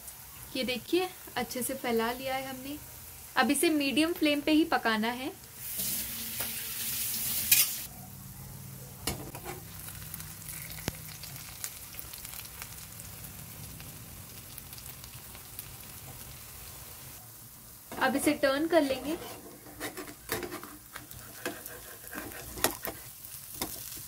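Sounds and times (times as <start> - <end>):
fish sizzling in oil: 0.0 - 7.9, 9.3 - 24.0
sharp pops of frying oil: 22.6 - 24.0.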